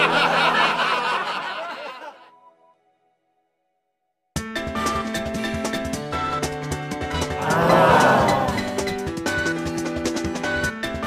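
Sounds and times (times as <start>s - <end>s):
laughter sound effect: 0.0s - 2.3s.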